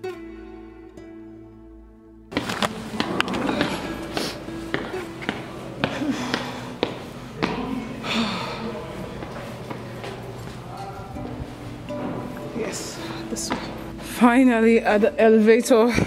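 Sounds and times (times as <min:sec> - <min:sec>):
background music: 0:00.0 - 0:16.0
footsteps on hard floor: 0:02.3 - 0:08.0, 0:08.9 - 0:14.5
voices: 0:02.4 - 0:16.0.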